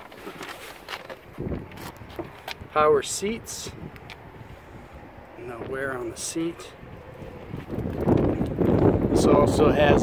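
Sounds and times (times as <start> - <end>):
wind noise on microphone: 1.2 - 10.0.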